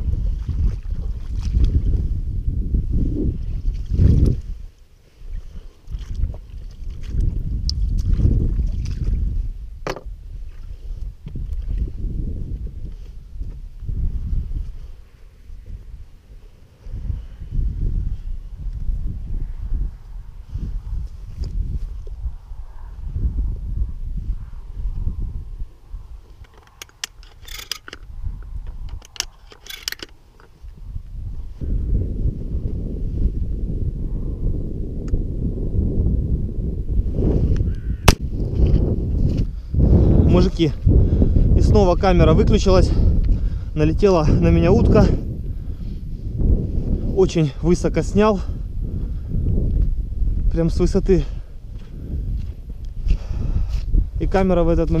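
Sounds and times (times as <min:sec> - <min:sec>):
wind buffeting microphone: 0:00.0 - 0:55.0
sharp loud crack: 0:38.0 - 0:38.3.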